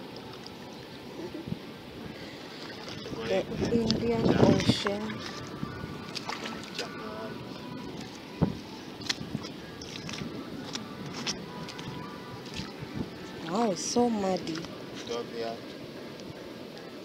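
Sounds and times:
wind hiss: 0:00.0 - 0:17.0
person's voice: 0:03.1 - 0:05.2.

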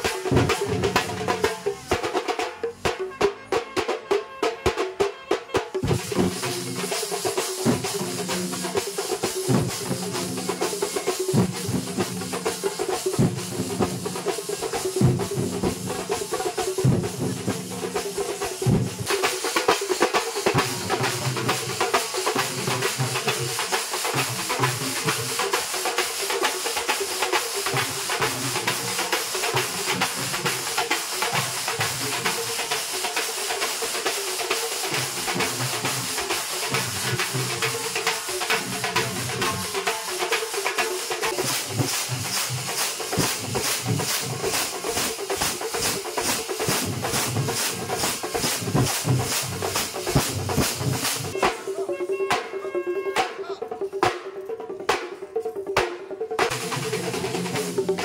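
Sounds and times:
cymbals: 0:00.0 - 0:58.0
drum ensemble fast rhythm: 0:00.0 - 0:58.0.

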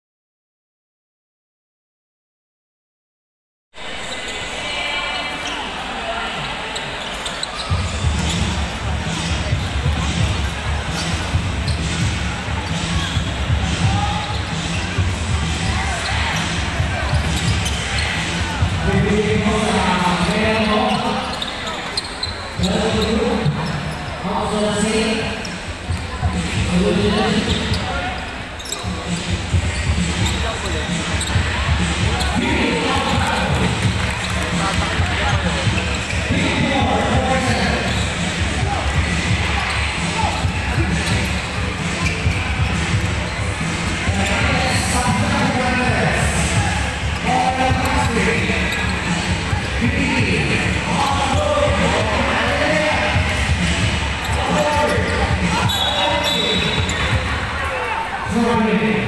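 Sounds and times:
crowd noise: 0:03.8 - 0:59.0.

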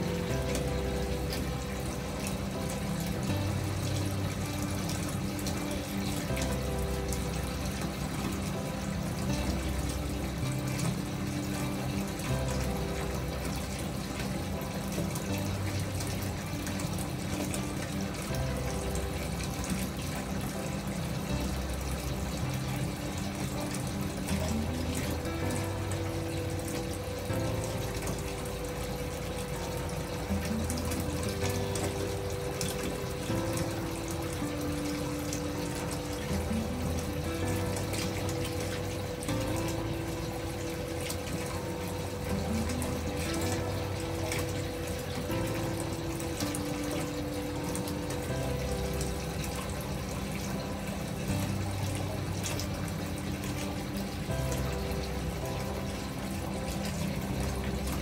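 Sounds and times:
gentle background music: 0:00.0 - 0:58.0
water rushing from bathtub spout: 0:00.0 - 0:58.0.

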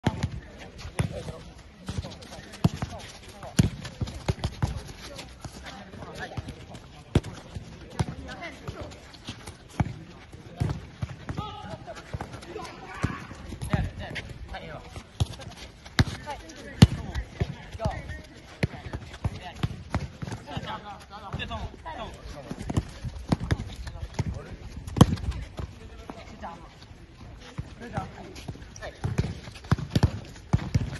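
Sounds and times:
soccer balls kicked on turf: 0:00.0 - 0:30.9.

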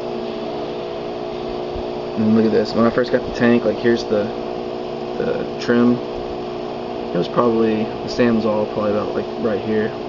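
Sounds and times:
mechanical hum with tones: 0:00.0 - 0:10.0.

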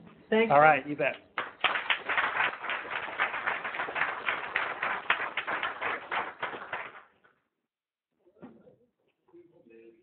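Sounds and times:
audience applauding: 0:01.4 - 0:07.2.

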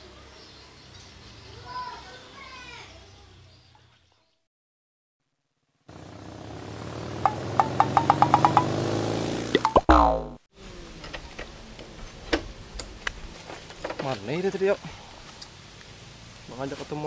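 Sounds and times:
faint outdoor ambience: 0:00.0 - 0:04.5, 0:05.5 - 0:17.0
falling boing-like sweep: 0:07.2 - 0:08.9, 0:09.5 - 0:10.4.

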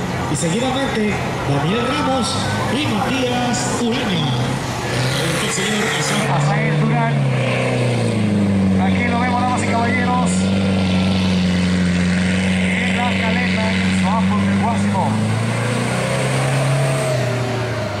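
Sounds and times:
truck engine roaring at high revs: 0:00.0 - 0:18.0.

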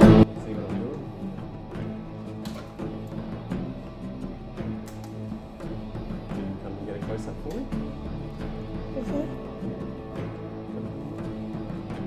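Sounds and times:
guitar background music: 0:00.0 - 0:12.0.

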